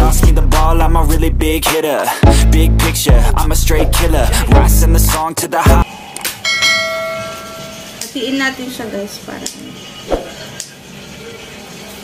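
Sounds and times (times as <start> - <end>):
bell chime: 6.4 - 8.0.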